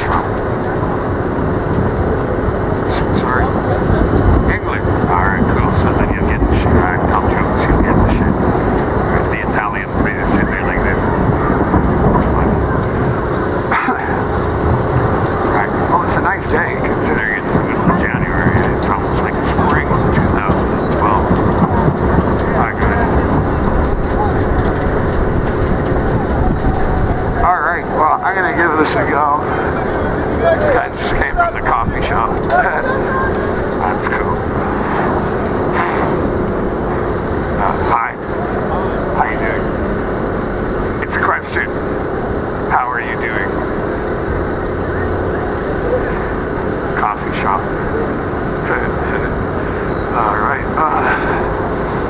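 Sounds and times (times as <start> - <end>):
voice with wavering pitch: 0.0 - 1.2, 1.9 - 24.8, 26.5 - 39.8, 44.7 - 52.0
people's voices: 0.0 - 52.0
traffic: 0.0 - 52.0
tram passing: 0.0 - 52.0.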